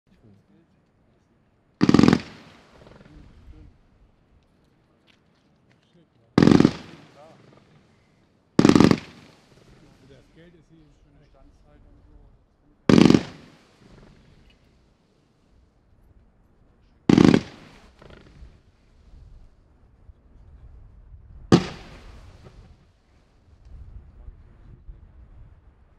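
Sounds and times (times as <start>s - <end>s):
firework battery volley: 1.8s - 3.5s, 6.4s - 10.4s, 12.9s - 14.7s, 17.1s - 18.9s, 21.5s - 23.4s.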